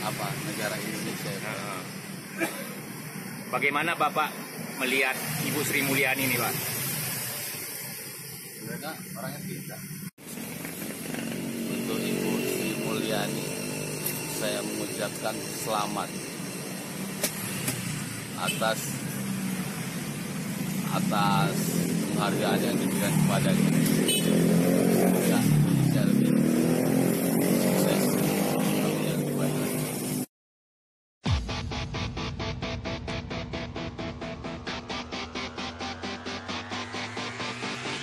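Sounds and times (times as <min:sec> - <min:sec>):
motorcycle passing: 0:10.2 - 0:30.3.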